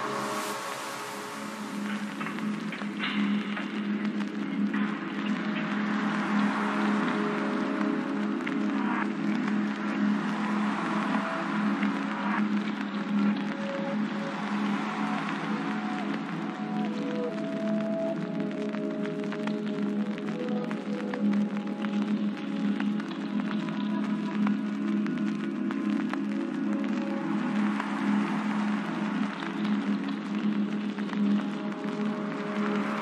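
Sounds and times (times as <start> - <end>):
slow drone music: 0.0 - 33.0
soft constant hiss: 0.0 - 33.0.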